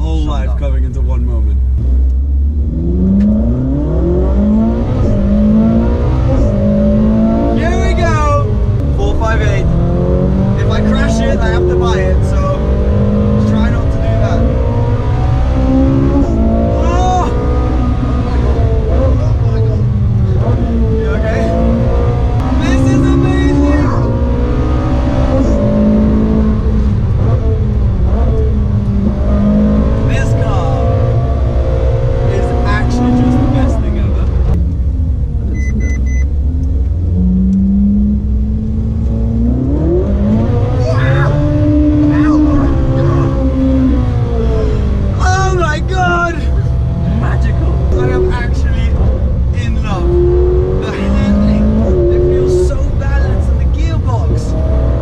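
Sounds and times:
car engine revving: 0:00.0 - 0:55.0
road and wind noise: 0:00.0 - 0:55.0.

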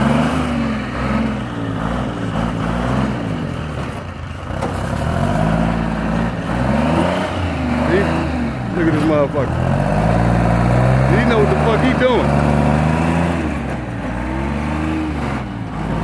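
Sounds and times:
diesel engine revving: 0:00.0 - 0:16.0.

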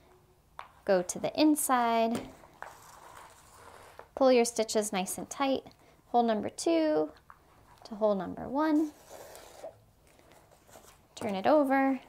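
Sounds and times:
paper rustling: 0:02.5 - 0:04.1
thread drawn through paper: 0:02.6 - 0:04.1, 0:08.8 - 0:09.8.

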